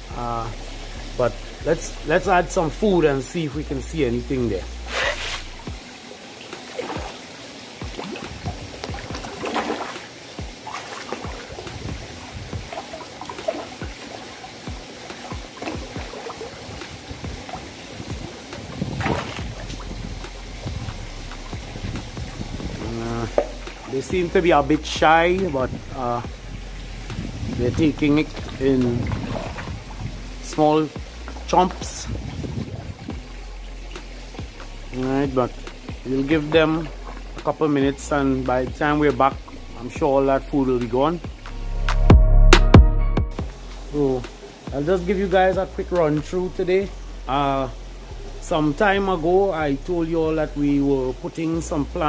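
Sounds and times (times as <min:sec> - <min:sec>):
water trickling and sloshing: 0:00.0 - 0:41.7, 0:43.4 - 0:52.0
steady low hum: 0:00.0 - 0:52.0
fish chomping clicks: 0:07.8 - 0:31.8, 0:33.2 - 0:36.1.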